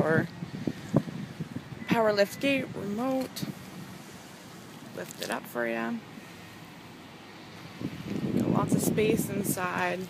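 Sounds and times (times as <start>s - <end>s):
wind noise on microphone: 0.0s - 4.3s, 7.5s - 10.0s.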